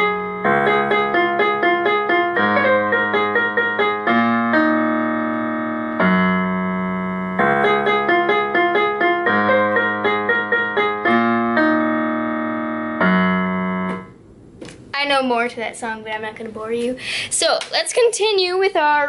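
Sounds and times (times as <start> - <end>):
electronic keyboard piano: 0.0 - 14.2.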